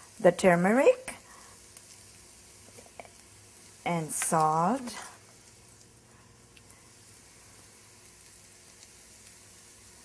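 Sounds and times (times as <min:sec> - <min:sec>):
onions sizzling in oil: 0:00.0 - 0:10.0.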